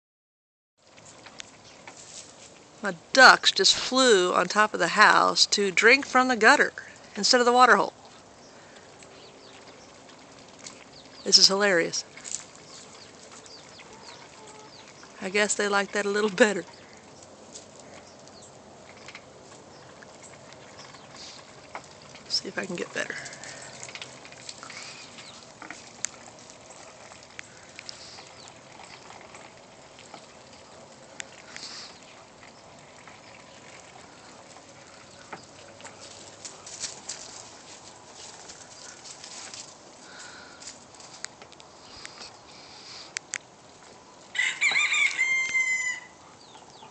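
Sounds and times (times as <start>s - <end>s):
ducks dabbling water: 0.8s - 46.9s.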